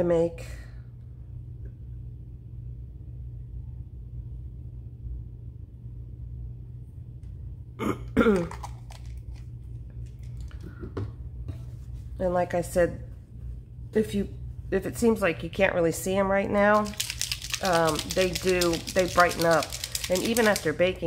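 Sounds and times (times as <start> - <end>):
room hum: 0.0 - 21.0.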